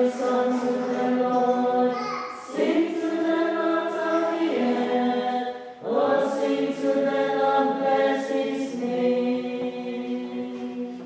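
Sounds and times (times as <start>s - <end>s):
women's choir singing a hymn: 0.0s - 11.0s.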